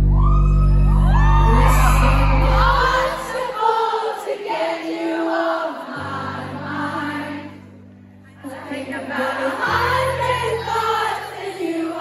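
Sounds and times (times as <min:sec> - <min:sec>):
sustained low chord: 0:00.0 - 0:03.4
live pop ballad singing: 0:01.1 - 0:04.1
crowd singing along: 0:01.5 - 0:07.8, 0:08.4 - 0:12.0.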